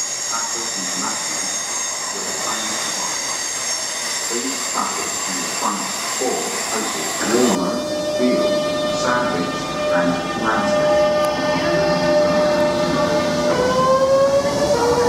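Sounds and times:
high-pitched train whine: 0:00.0 - 0:15.0
steady train tones: 0:00.0 - 0:15.0
voices: 0:00.3 - 0:03.3, 0:04.3 - 0:13.9.

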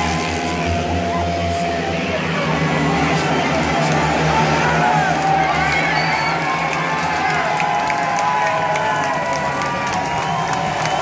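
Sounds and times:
stadium crowd cheering and shouting: 0:00.0 - 0:11.0
scattered clapping: 0:02.8 - 0:11.0.

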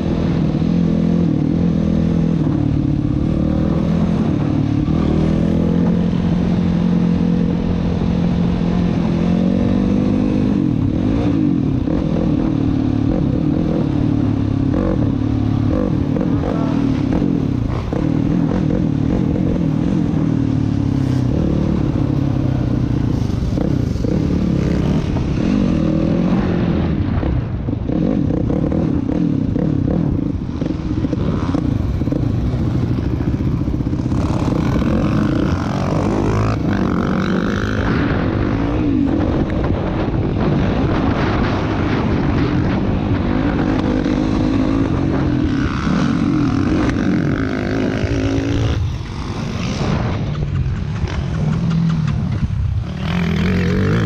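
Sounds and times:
quad engine at low speed: 0:00.0 - 0:54.0.

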